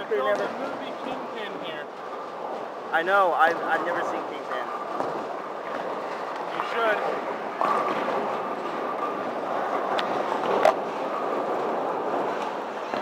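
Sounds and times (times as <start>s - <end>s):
bowling balls rolling down lanes: 0.2s - 13.0s.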